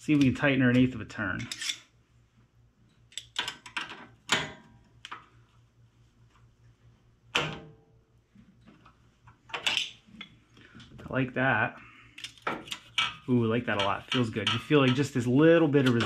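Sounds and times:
steady low hum: 0:00.0 - 0:16.0
metal tool clicks and clanks: 0:01.4 - 0:01.9.

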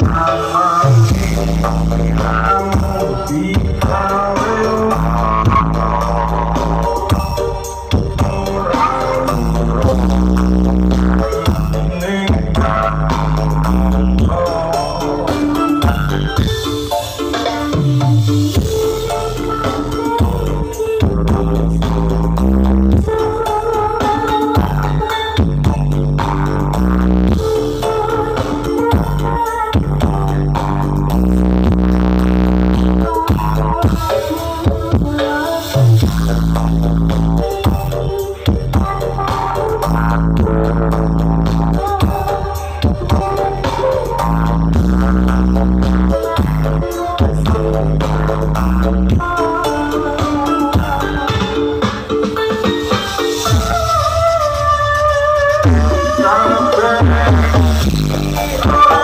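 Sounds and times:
loud bass-heavy music over loudspeakers: 0:00.0 - 0:59.0.

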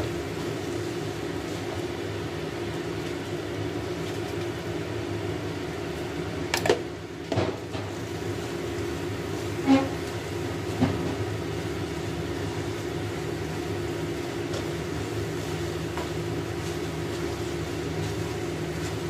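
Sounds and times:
low mechanical hum: 0:00.0 - 0:19.0
wooden spatula scraping a wok: 0:09.4 - 0:10.1.

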